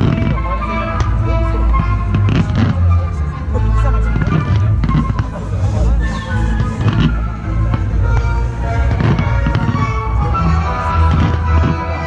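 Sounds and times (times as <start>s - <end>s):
fireworks popping and crackling: 0.0s - 3.0s, 3.8s - 12.0s
steady music: 0.0s - 12.0s.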